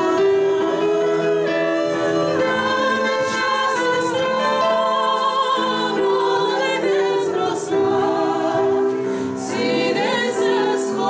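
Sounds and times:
digital piano: 0.0s - 11.0s
women singing in harmony: 0.0s - 11.0s.

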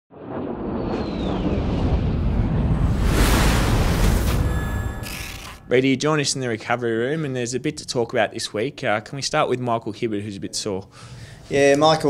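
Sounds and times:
jet flyover rumble: 0.1s - 4.6s
falling whistle: 0.8s - 2.7s.

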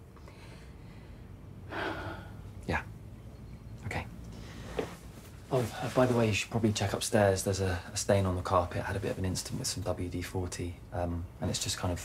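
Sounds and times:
heavy breath sigh: 0.3s - 2.5s.

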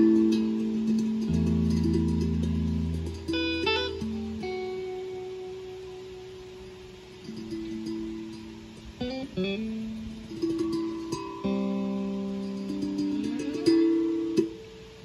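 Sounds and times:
guitar plucked notes and chords: 0.0s - 15.0s.

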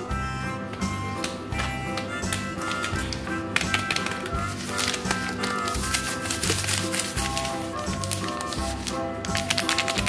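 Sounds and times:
background music: 0.0s - 10.0s
wrapped chocolate bar taps: 0.7s - 10.0s.

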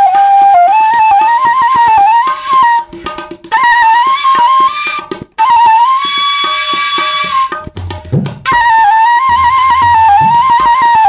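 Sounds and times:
bamboo flute melody: 0.0s - 11.0s.

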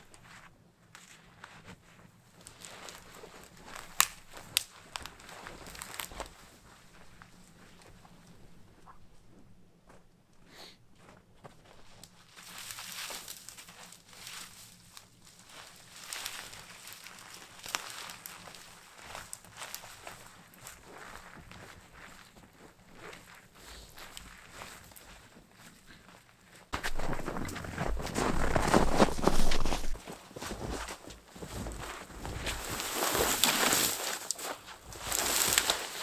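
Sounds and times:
footsteps crunching in snow: 0.2s - 8.2s, 11.0s - 36.0s
spruce branches rustling and scraping: 0.2s - 8.2s, 12.0s - 36.0s.

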